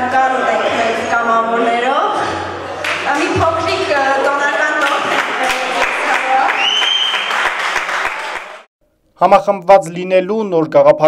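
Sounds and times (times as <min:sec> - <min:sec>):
audience applauding: 0:04.8 - 0:08.7
high whistle: 0:06.5 - 0:07.5.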